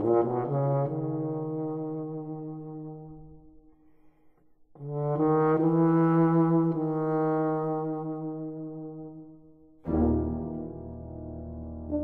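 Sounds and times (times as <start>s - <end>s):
euphonium with brass band: 0.0s - 3.6s, 4.8s - 12.0s.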